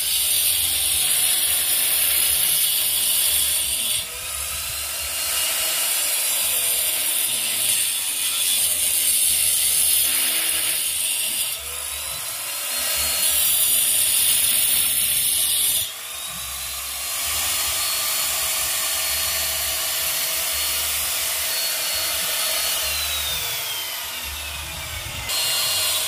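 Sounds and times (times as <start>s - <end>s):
angle grinder cutting brick: 0.0s - 26.0s.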